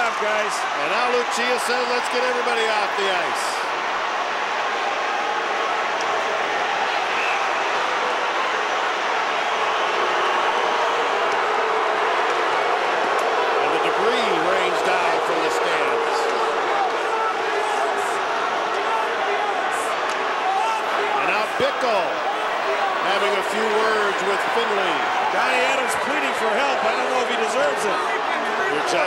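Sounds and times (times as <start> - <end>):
crowd din of many voices: 0.0 - 29.0.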